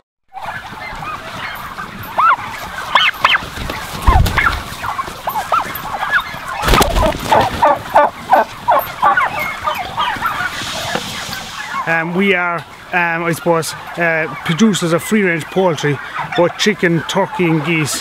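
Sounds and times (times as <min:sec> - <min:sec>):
turkeys calling: 0:00.3 - 0:18.0
wing flapping: 0:00.6 - 0:11.9.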